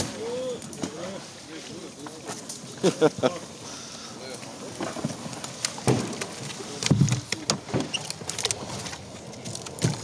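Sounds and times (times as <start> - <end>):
canoe pushing through dry reeds: 0.0 - 10.0
paddle knocking against hull: 4.7 - 8.0.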